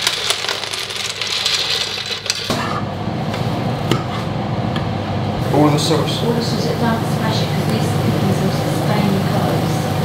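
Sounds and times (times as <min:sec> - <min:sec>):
dry pasta rattling into steel pot: 0:00.0 - 0:02.5.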